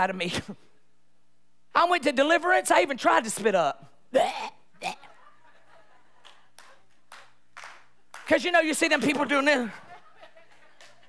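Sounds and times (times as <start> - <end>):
woman's throaty retching sounds: 4.1 - 5.1.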